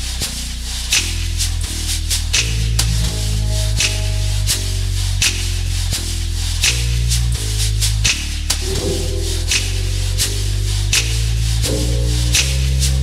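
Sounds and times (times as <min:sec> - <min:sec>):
deep jazz bass line: 0:00.0 - 0:13.0
bright cymbal strokes: 0:03.0 - 0:07.2, 0:08.1 - 0:13.0
held higher note: 0:08.6 - 0:10.7.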